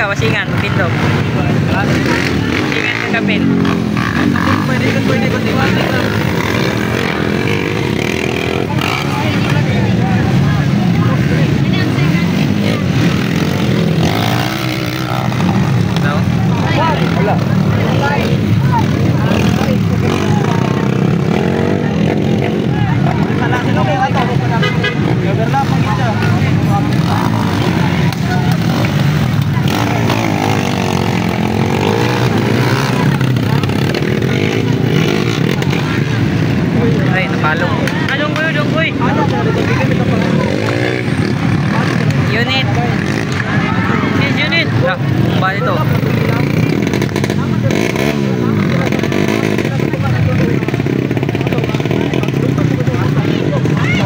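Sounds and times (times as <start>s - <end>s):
crowd voices: 0.0s - 54.0s
motorcycle engines revving: 0.0s - 54.0s.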